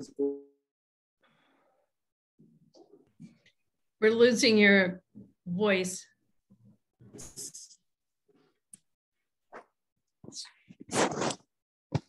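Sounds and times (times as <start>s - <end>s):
choppy voice on video call: 2.4s - 7.9s.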